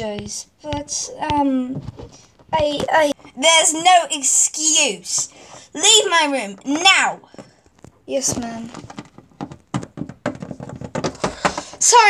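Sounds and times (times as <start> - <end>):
plastic toy tapping on wooden floor: 8.7 - 11.9.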